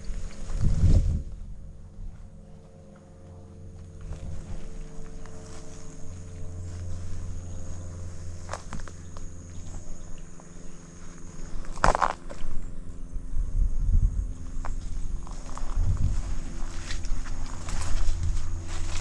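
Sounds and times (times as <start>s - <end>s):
footsteps through grass: 0.0s - 12.6s, 14.4s - 19.0s
leaves and twigs rustling: 0.0s - 12.7s, 14.4s - 19.0s
low rumble: 0.0s - 19.0s
loud crunch: 2.6s - 12.8s, 14.4s - 19.0s.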